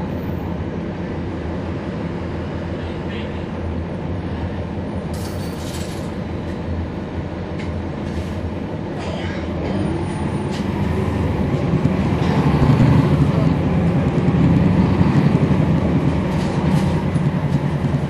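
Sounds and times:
bus diesel engine rumbling: 0.0 - 18.0.

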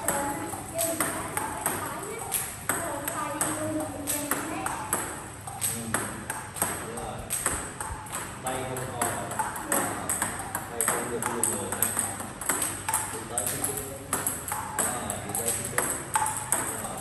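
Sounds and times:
table tennis balls clicking: 0.0 - 17.0.

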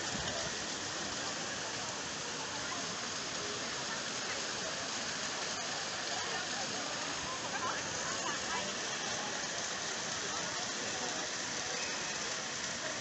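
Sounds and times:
faint voices: 0.0 - 13.0
fountain water splashing: 0.0 - 13.0.

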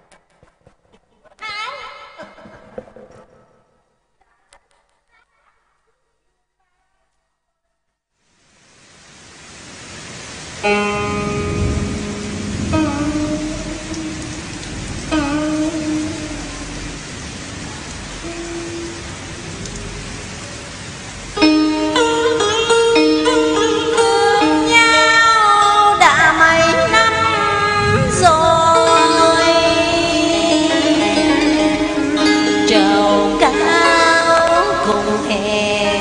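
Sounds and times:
steady hiss: 8.2 - 36.0
instrumental backing track: 21.4 - 27.6.

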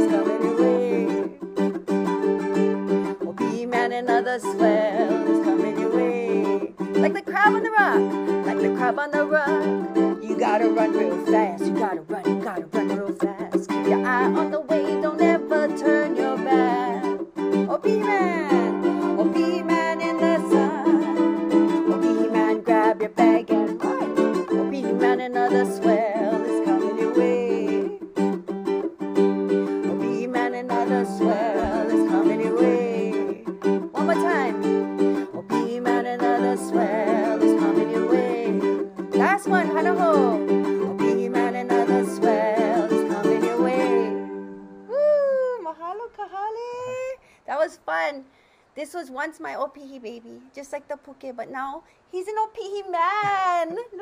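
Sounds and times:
woman singing: 0.0 - 1.6, 3.0 - 28.3, 29.8 - 48.1, 49.0 - 54.0
ukulele strumming: 0.0 - 45.1, 52.7 - 54.0.

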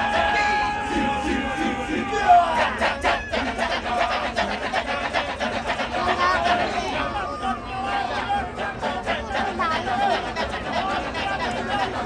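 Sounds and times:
men chanting rapid rhythm: 0.0 - 12.0.

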